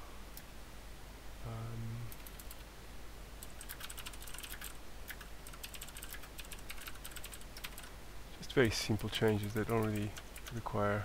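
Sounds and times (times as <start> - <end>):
typing on computer keyboard: 2.1 - 2.6, 3.4 - 7.9, 9.0 - 10.6.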